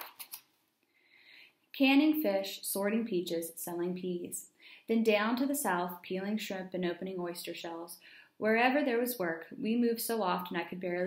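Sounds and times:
paper page turning: 0:00.0 - 0:00.5
woman reading aloud: 0:01.8 - 0:11.0.

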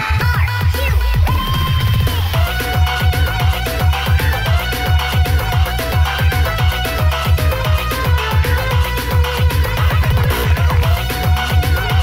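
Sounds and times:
electronic dance music: 0:00.0 - 0:12.0
high held melody line: 0:00.0 - 0:12.0.

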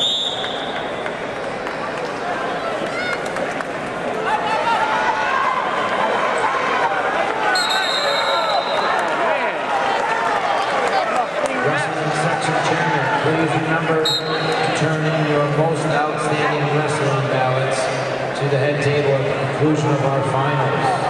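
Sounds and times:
referee's whistle blowing: 0:00.0 - 0:00.9, 0:07.5 - 0:09.0, 0:14.0 - 0:14.7
spectators shouting and cheering: 0:00.0 - 0:18.2.

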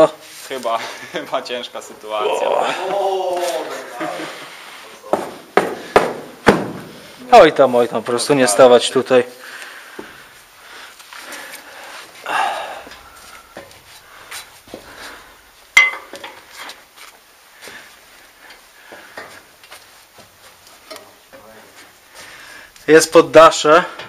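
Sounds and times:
breathing: 0:00.8 - 0:01.2, 0:04.2 - 0:05.0, 0:05.7 - 0:06.2, 0:09.3 - 0:15.5, 0:17.6 - 0:19.5, 0:22.1 - 0:22.8.

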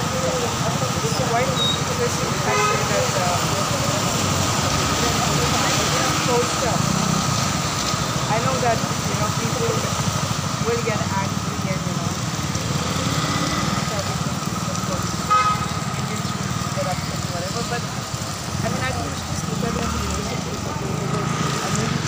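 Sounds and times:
vehicle engine idling: 0:00.0 - 0:22.0
voices chattering: 0:00.0 - 0:22.0.

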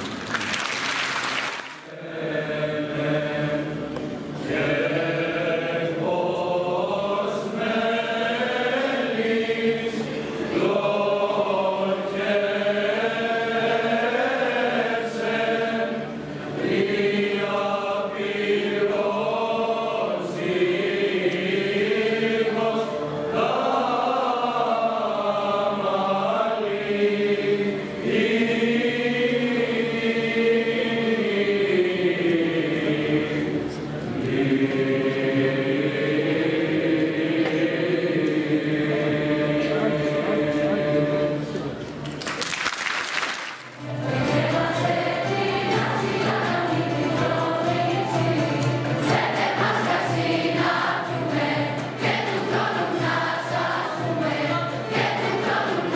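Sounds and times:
male choir singing: 0:01.8 - 0:41.9, 0:43.8 - 0:55.9.

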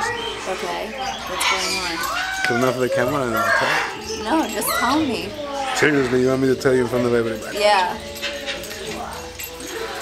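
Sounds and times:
murmur of voices: 0:00.0 - 0:10.0
pet birds chirping: 0:00.0 - 0:10.0.

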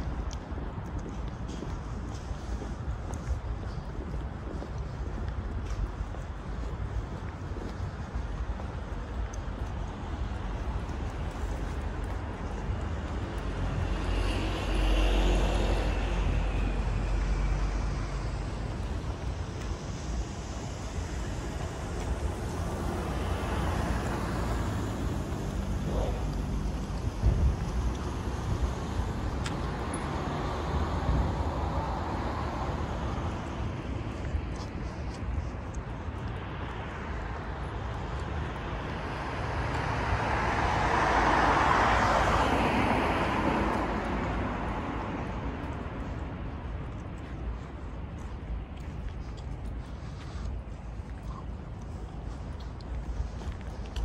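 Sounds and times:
cars passing: 0:00.0 - 0:54.0
road noise hum: 0:00.0 - 0:54.0.

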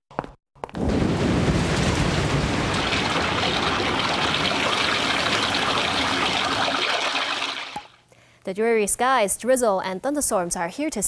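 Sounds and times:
cartoon downpour and rushing water: 0:00.8 - 0:08.0.

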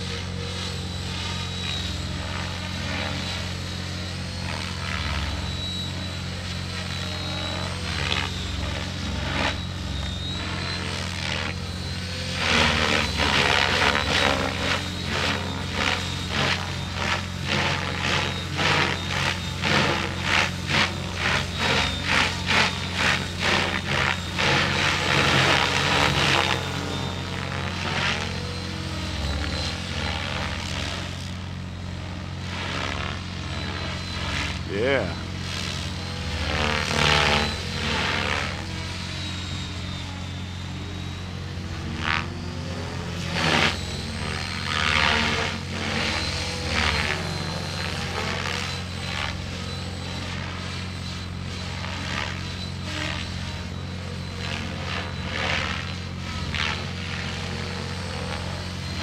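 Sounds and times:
helicopter rotor whooshing: 0:00.0 - 0:59.0
thin high whine: 0:00.0 - 0:59.0.

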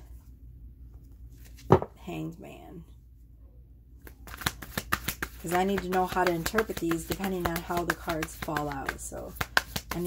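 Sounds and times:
card thumping on table: 0:01.6 - 0:01.9.

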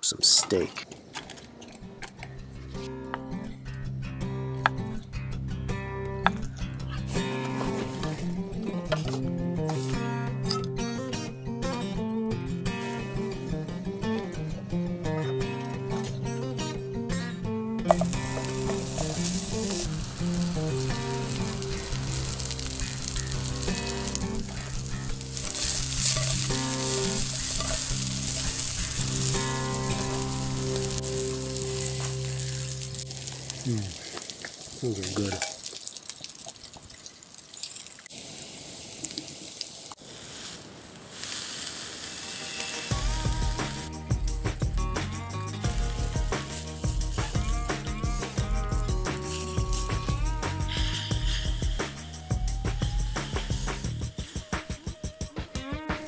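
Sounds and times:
background music: 0:01.8 - 0:33.8, 0:42.3 - 0:56.0
sausage sizzling in a frying pan: 0:17.9 - 0:43.9, 0:45.6 - 0:54.5
fork turning food in pan: 0:21.3 - 0:30.3.

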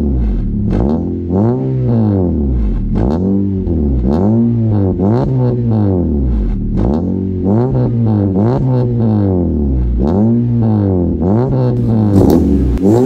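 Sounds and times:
car engine revving: 0:00.0 - 0:13.0.

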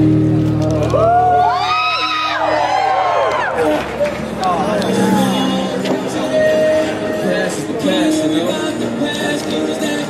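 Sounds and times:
audience whooping and cheering: 0:00.5 - 0:05.4.

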